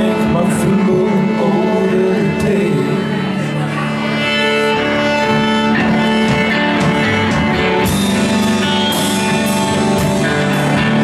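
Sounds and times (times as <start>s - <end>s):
electric guitars sustained notes: 0.0s - 11.0s
violin sustained notes: 0.0s - 11.0s.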